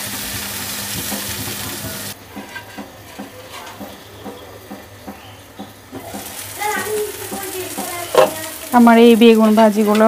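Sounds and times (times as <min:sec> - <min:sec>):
eggplant frying in oil: 0:00.0 - 0:03.2, 0:05.7 - 0:10.0.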